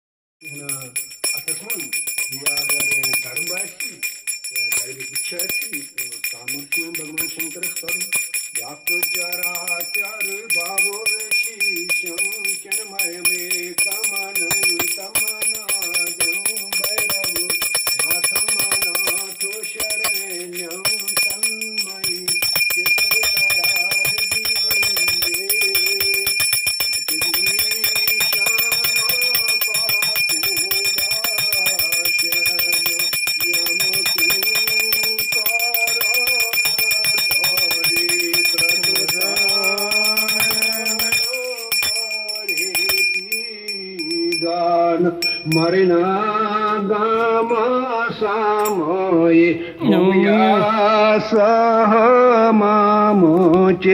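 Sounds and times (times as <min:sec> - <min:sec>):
brass hand bell ringing: 0:00.4 - 0:46.3
person chanting a hymn: 0:45.9 - 0:53.9.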